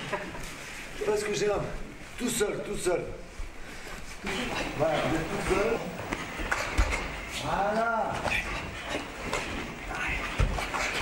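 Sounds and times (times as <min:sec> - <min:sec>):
people talking indistinctly: 0:04.2 - 0:09.0.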